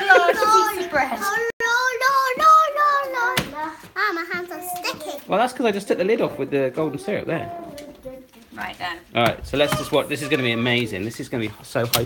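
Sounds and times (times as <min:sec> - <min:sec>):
child singing: 0:00.1 - 0:05.3, 0:06.8 - 0:08.4.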